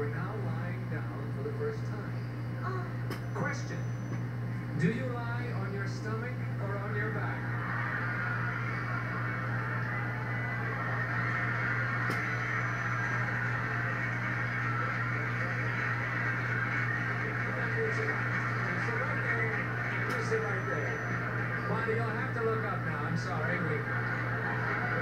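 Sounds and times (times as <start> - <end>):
steady low hum: 0.0 - 25.0
studio audience laughter: 7.2 - 25.0
audience applause: 7.5 - 22.7, 23.4 - 25.0.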